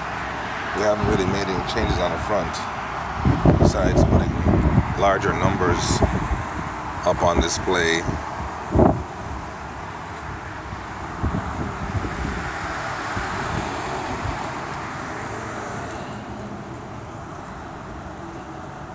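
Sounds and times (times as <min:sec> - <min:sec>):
road traffic: 0:00.0 - 0:18.9
wind on microphone: 0:03.1 - 0:09.5, 0:10.3 - 0:15.7.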